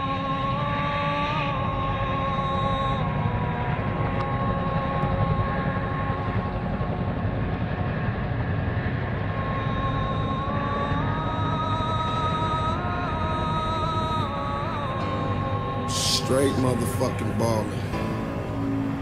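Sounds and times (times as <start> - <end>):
sustained synth chord: 9.4 - 19.0.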